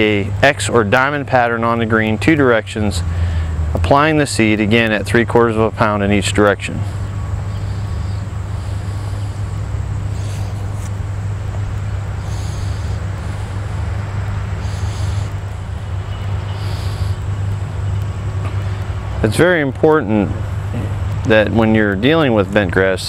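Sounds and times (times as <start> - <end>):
small engine idling: 0.0 - 19.3.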